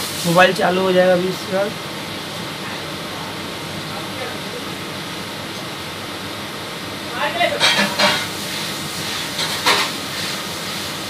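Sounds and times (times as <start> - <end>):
air conditioning hiss: 0.0 - 11.0.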